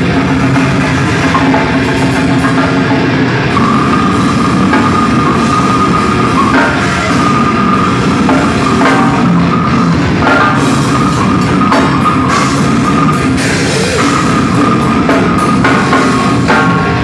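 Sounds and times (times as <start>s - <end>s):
metal band playing live: 0.0s - 17.0s.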